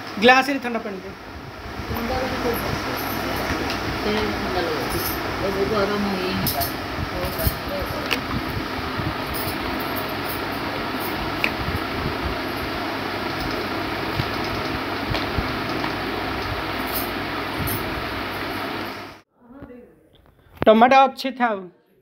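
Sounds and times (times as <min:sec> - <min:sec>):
ceiling fan whooshing: 0:00.0 - 0:19.2.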